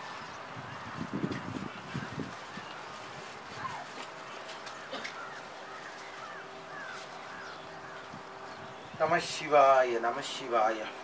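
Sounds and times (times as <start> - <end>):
bird calling: 0.0 - 9.1.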